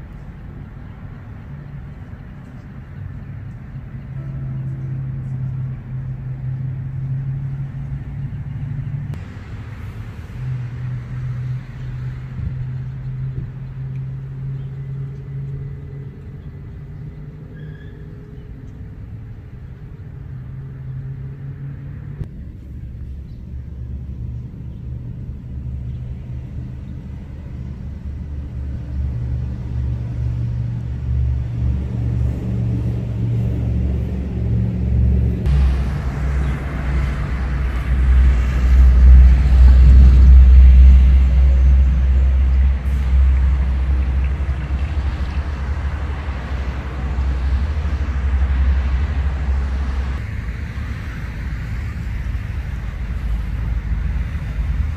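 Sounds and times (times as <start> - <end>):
road traffic rumbling: 0.0 - 54.9
truck driving past: 0.0 - 54.9.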